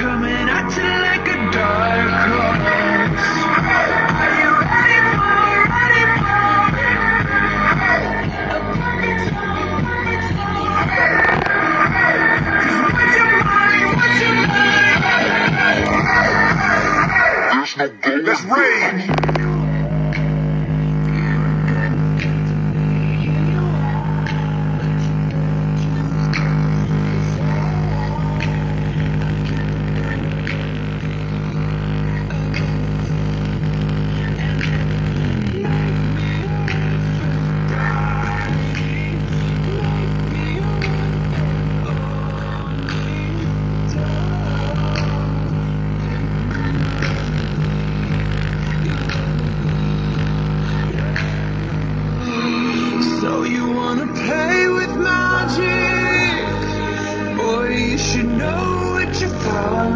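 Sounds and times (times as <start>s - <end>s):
deep bass drone: 0.0s - 17.4s, 19.1s - 59.9s
bass-heavy music from speaker: 0.0s - 59.9s.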